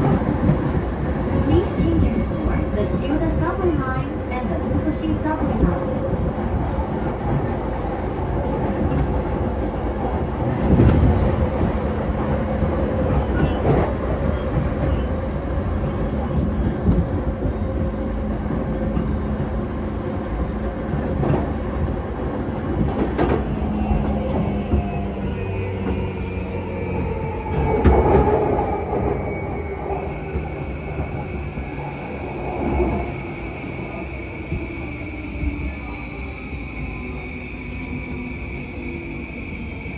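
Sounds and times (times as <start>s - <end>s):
train wheels rumbling on rail: 0.0s - 39.9s.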